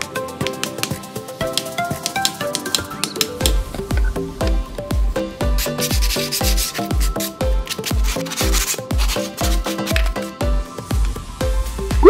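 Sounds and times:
background music with kick drum: 0.0s - 12.0s
sanding board by hand: 5.4s - 10.5s.

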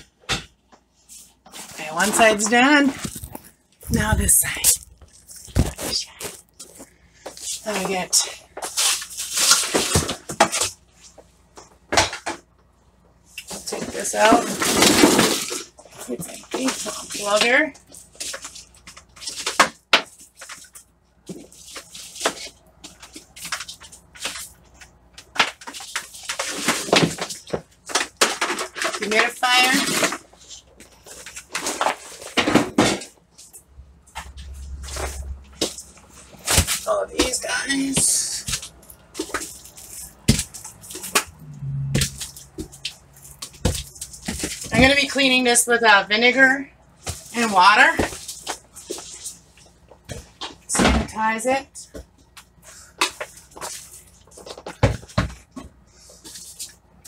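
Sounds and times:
woman talking: 1.7s - 3.0s, 3.8s - 4.9s, 5.6s - 6.4s, 7.6s - 8.4s, 13.7s - 14.6s, 16.0s - 17.8s, 29.0s - 30.0s, 36.8s - 38.5s, 44.7s - 46.7s, 47.3s - 48.1s, 50.7s - 52.0s.

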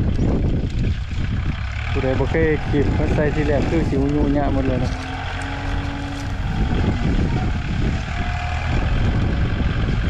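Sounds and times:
loader engine running: 0.0s - 10.0s.

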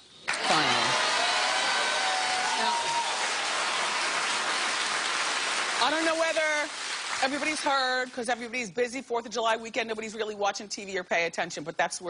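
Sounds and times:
audience applauding: 0.3s - 8.1s.

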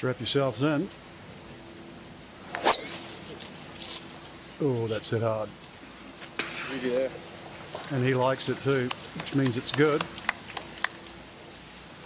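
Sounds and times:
club striking golf ball: 2.5s - 3.4s
golf club swish: 2.5s - 3.5s.

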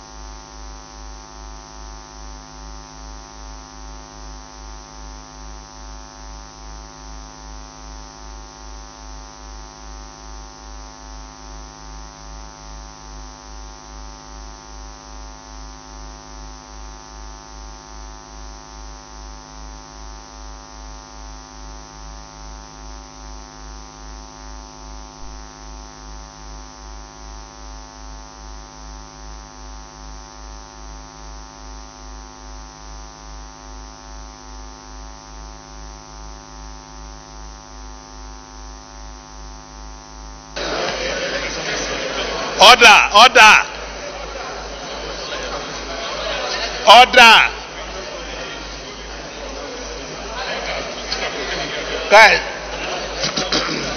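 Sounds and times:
electrical mains hum: 0.0s - 53.9s
indistinct voices in a room: 40.6s - 53.9s.

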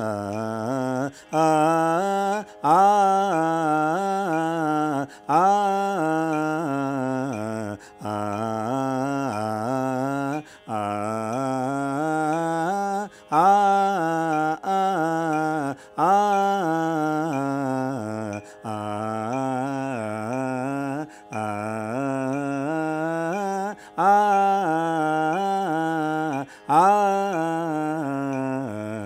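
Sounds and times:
person singing vocal exercise: 0.0s - 29.0s
singer breathing: 5.1s - 5.3s, 7.8s - 8.0s, 10.4s - 10.7s, 13.0s - 13.4s, 15.8s - 16.0s, 18.4s - 18.7s, 21.0s - 21.3s, 23.7s - 24.0s, 26.4s - 26.7s.

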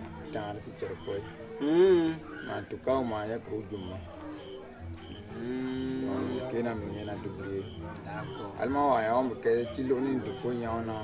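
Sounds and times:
faint high chirps: 0.3s - 11.0s.

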